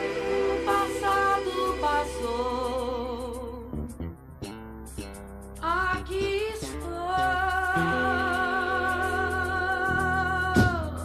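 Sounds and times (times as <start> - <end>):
high singing voice with vibrato: 0.0 - 3.8, 5.6 - 11.0
soft instrumental backing: 0.0 - 11.0.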